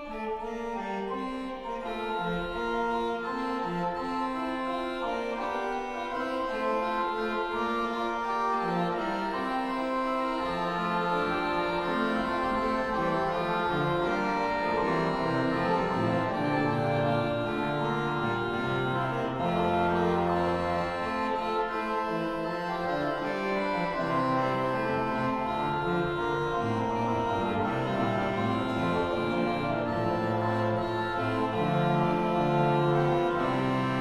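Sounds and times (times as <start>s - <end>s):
low organ pedal notes: 0.0s - 34.0s
pipe organ playing: 0.0s - 34.0s.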